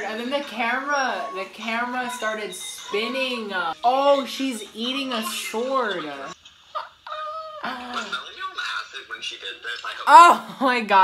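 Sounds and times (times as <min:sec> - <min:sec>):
person squealing: 0:10.1 - 0:10.5.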